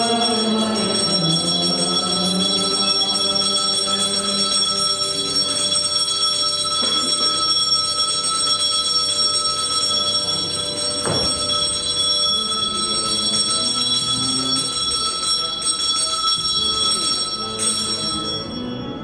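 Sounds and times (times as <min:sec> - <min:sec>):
bell ringing continuously: 0:00.0 - 0:19.0.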